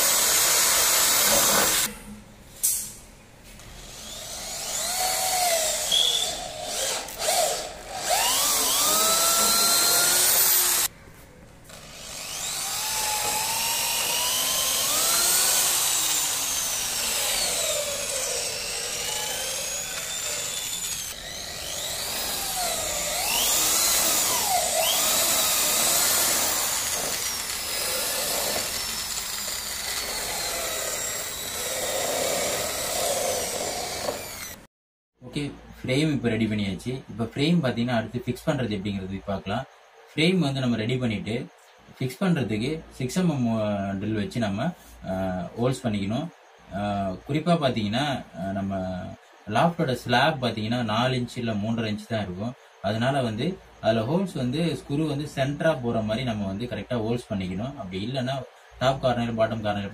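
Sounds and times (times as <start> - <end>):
electric drill boring into wood: 0.0 - 1.9, 3.9 - 10.9, 11.7 - 34.7.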